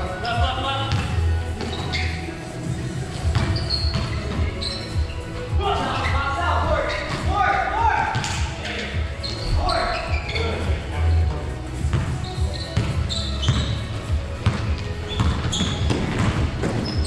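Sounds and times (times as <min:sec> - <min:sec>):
sneakers squeaking: 0:00.0 - 0:17.0
basketball bouncing on hardwood floor: 0:03.2 - 0:04.5, 0:12.8 - 0:13.8, 0:14.4 - 0:17.0.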